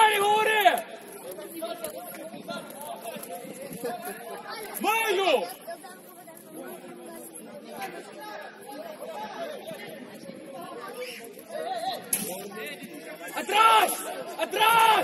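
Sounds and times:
players shouting and chattering: 0.0 - 15.0.

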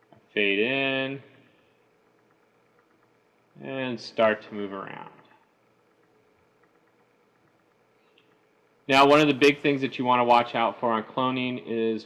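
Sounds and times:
faint steady hum: 0.0 - 12.0
man speaking: 3.6 - 5.3, 8.9 - 12.0.

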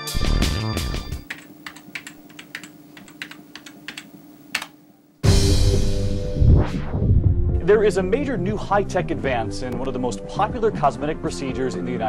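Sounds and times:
faint steady hum: 0.8 - 5.8
typing on computer keyboard: 1.2 - 4.8.

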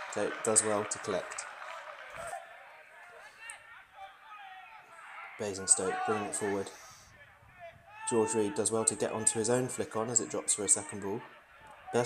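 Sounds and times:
distant footballers shouting: 0.0 - 12.0.

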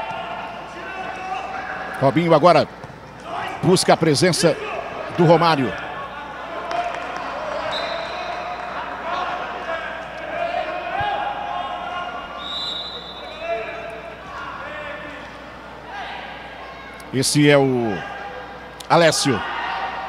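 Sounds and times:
players calling out: 0.0 - 20.0.

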